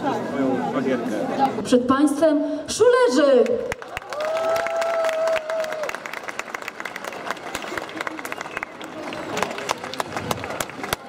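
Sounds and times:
audience clapping and cheering: 0:03.6 - 0:11.0.

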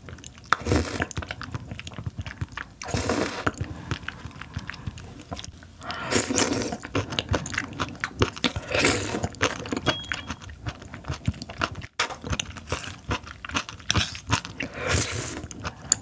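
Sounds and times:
wet slurping and smacking: 0:00.0 - 0:09.8.

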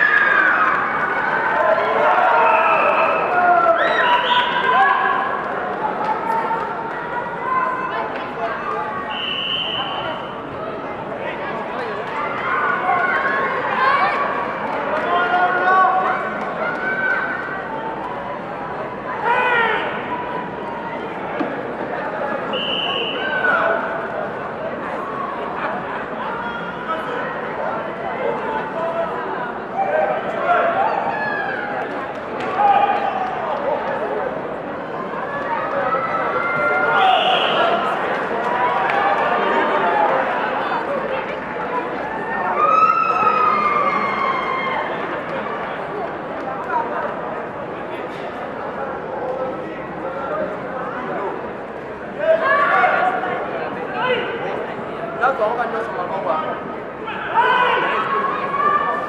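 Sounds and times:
loud shouts: 0:00.0 - 0:05.4, 0:19.1 - 0:20.4, 0:32.4 - 0:33.6, 0:35.3 - 0:40.3, 0:57.0 - 0:59.0
crowd voices talking and calling: 0:00.0 - 0:59.0.

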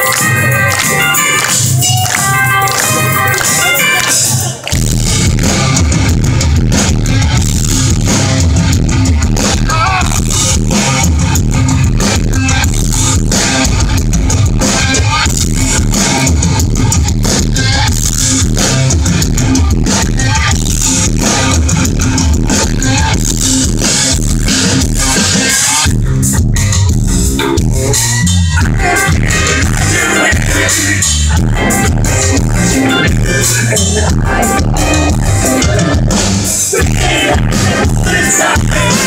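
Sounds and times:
bass guitar: 0:00.0 - 0:39.0
distorted electric guitars: 0:00.0 - 0:39.0
drums pounding: 0:00.0 - 0:39.0.

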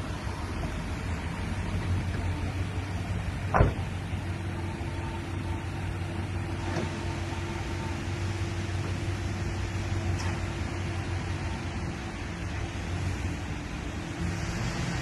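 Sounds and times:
car engine idling: 0:00.0 - 0:06.6
car door shutting: 0:03.5 - 0:04.0.

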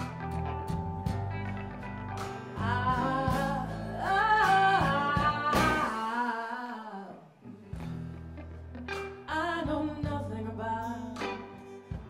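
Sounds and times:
guitar accompaniment: 0:00.0 - 0:12.0
person singing soul ballad: 0:02.2 - 0:08.1, 0:09.2 - 0:12.0.

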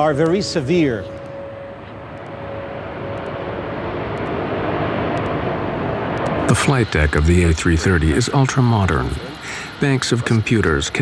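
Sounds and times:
faint steady whine: 0:00.0 - 0:11.0
jet engine rushing: 0:00.0 - 0:11.0.

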